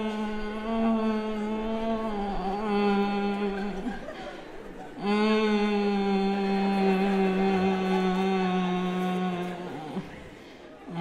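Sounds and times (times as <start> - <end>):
man singing a long note: 0.0 - 3.9, 5.0 - 10.1.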